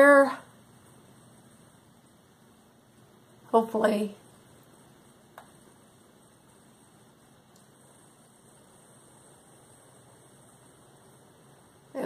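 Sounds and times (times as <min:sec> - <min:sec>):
faint room hiss: 0:00.0 - 0:12.0
faint click: 0:05.3 - 0:05.6, 0:07.5 - 0:07.8.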